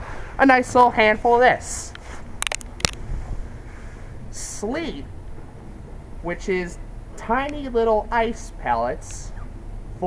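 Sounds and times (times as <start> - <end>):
low wind rumble on microphone: 0.0 - 10.0.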